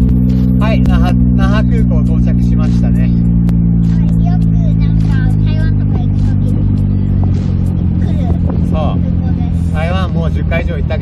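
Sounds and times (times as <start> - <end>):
car engine running: 0.0 - 11.0
people talking: 0.6 - 11.0.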